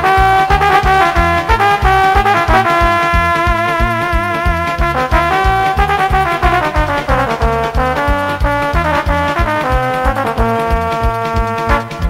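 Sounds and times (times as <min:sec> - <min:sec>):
instrumental folk music: 0:00.0 - 0:12.0.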